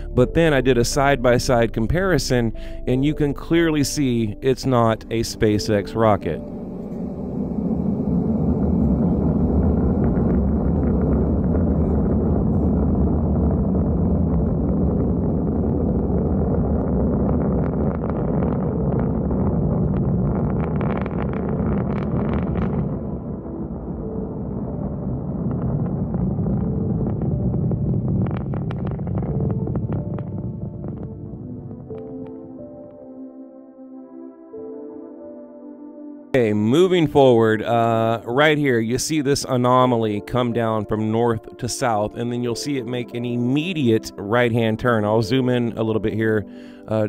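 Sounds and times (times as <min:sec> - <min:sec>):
rocket crackling: 0:00.0 - 0:33.1, 0:36.4 - 0:47.0
distant rocket engines rumbling: 0:03.8 - 0:33.0.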